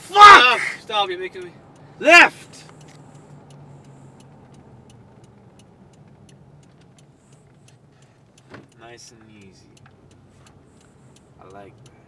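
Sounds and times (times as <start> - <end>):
engine humming: 0.0 - 12.0
turn signal ticking: 0.0 - 12.0.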